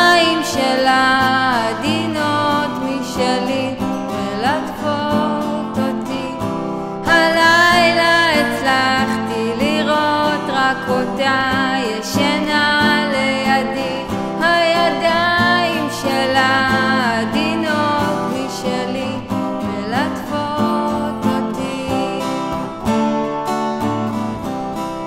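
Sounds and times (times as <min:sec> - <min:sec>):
person singing: 0:00.0 - 0:23.1
strummed acoustic guitar: 0:00.0 - 0:25.0.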